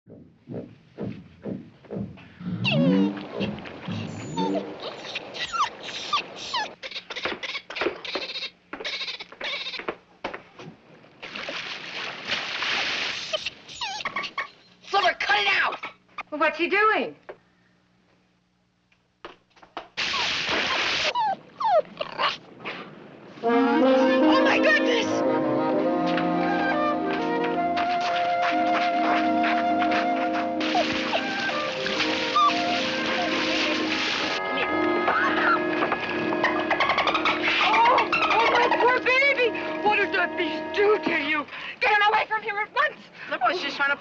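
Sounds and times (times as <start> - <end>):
small dog yapping: 3.4 - 8.4, 20.0 - 22.4, 30.6 - 33.4
loud water splash: 11.2 - 13.4, 20.0 - 21.2, 30.6 - 34.4
background music: 23.4 - 41.5.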